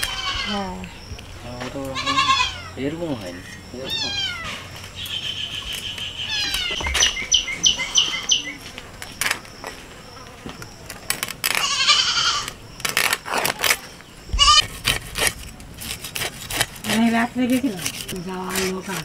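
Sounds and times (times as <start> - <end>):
animal calling: 0.0 - 8.7, 13.3 - 15.0
knife scraping fish scales: 14.4 - 19.0.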